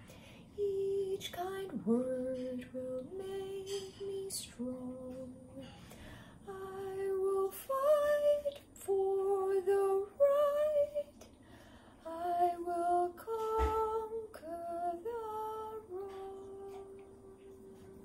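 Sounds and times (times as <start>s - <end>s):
woman singing wordless tune: 0.1s - 11.4s, 12.0s - 18.0s.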